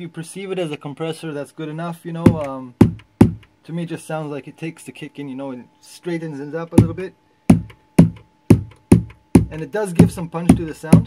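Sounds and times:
synthesized kick drum: 2.3s - 3.6s, 6.8s - 11.0s.

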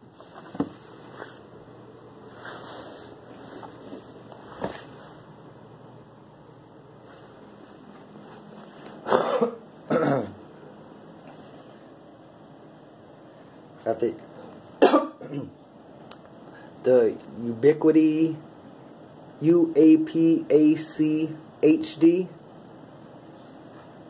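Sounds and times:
person coughing: 9.0s - 10.4s, 14.8s - 15.6s.

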